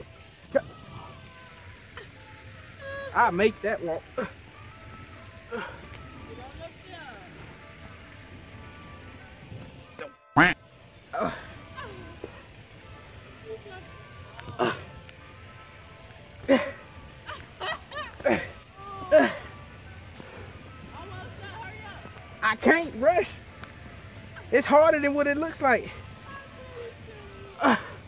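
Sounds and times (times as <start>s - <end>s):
faint background music: 0.0s - 28.0s
man grunting with effort: 27.6s - 28.0s.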